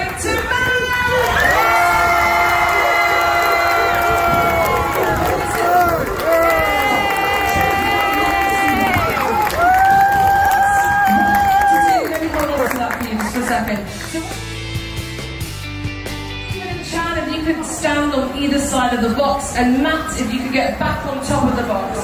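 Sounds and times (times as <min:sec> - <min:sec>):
large crowd cheering: 0:00.0 - 0:14.4
long drawn-out shouts: 0:01.2 - 0:12.0.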